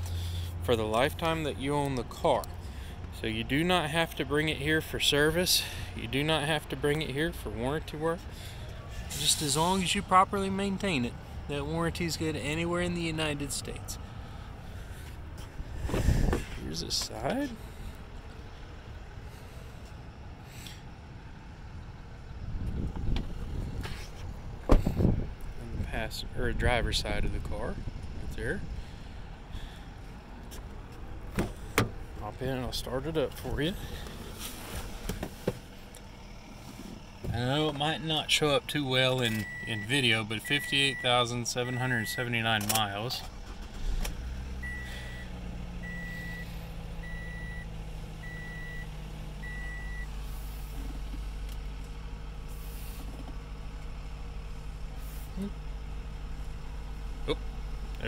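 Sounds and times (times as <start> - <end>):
car engine starting and idling: 0.0 - 58.0
wind rumble on microphone: 15.6 - 16.6, 22.4 - 28.8
dashboard warning chime beeps: 39.3 - 42.6, 44.6 - 50.1.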